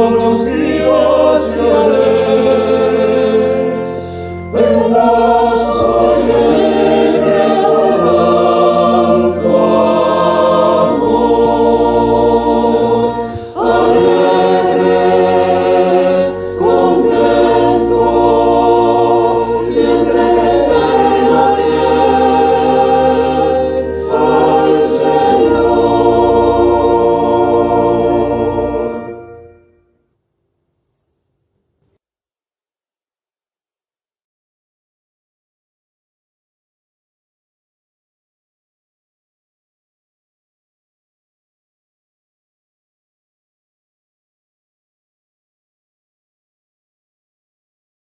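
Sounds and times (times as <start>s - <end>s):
mixed choir singing a hymn: 0.0s - 29.5s
keyboard accompaniment: 0.0s - 30.0s.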